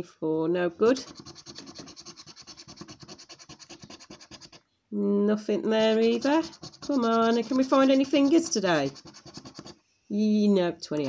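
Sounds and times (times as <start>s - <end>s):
coin scratching a scratchcard: 1.0s - 4.6s, 5.7s - 9.8s.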